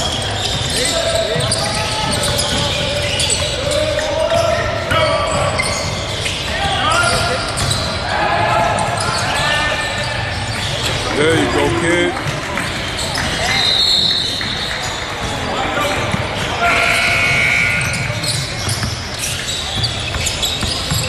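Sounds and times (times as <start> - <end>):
basketball dribbling and bouncing: 0.0 - 21.0
players and spectators calling out: 0.0 - 21.0
short high squeals: 16.6 - 21.0.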